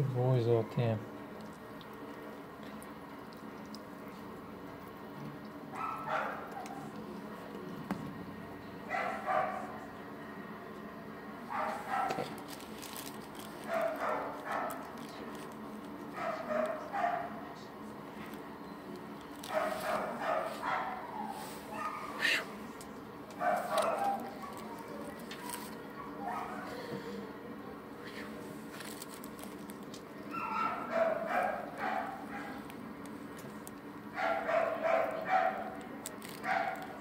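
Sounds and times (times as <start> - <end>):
steady low hum: 0.0 - 37.0
dog barking: 5.8 - 6.9, 8.9 - 9.7, 11.5 - 12.3, 13.7 - 14.8, 16.2 - 17.4, 19.5 - 22.4, 23.4 - 24.8, 26.0 - 26.7, 30.3 - 32.6, 34.2 - 35.8, 36.4 - 36.9.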